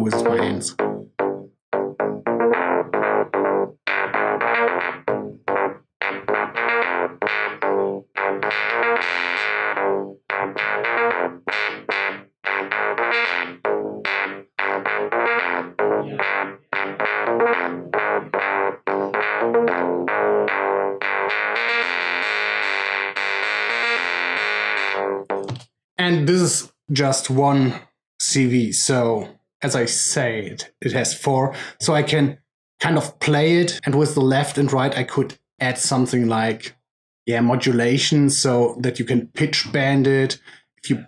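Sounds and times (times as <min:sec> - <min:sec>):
synthesizer sequence of short notes: 0:00.0 - 0:25.6.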